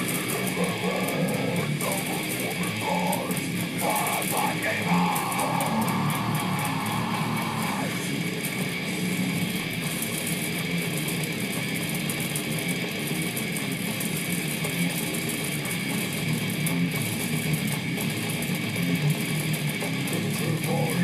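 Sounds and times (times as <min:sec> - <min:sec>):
electric guitar metal riffs: 0:00.0 - 0:21.0
metal song from laptop speakers: 0:00.0 - 0:21.0.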